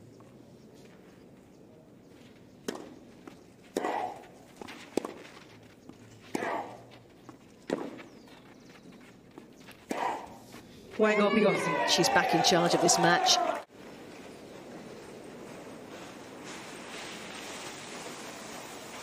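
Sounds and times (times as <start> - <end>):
racket striking tennis ball: 2.6 - 3.0, 3.7 - 4.2, 6.2 - 6.8.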